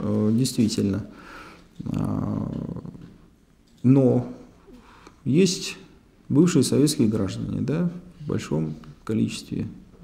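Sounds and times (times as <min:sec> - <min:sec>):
faint breath: 0:01.1 - 0:01.7, 0:04.7 - 0:05.2.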